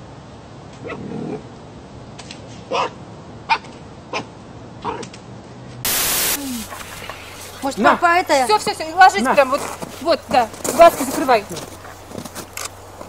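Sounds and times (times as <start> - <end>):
fox yipping: 2.7 - 5.0
loud burst of hiss: 5.9 - 7.7.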